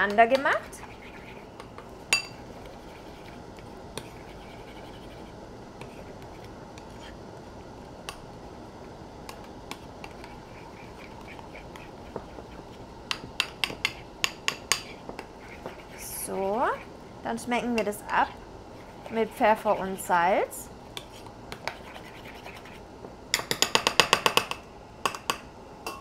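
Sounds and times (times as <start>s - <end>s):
teaspoon stirring in ceramic bowl: 0.1s - 3.4s, 4.0s - 7.2s, 9.4s - 16.9s, 18.8s - 20.0s, 20.9s - 22.8s.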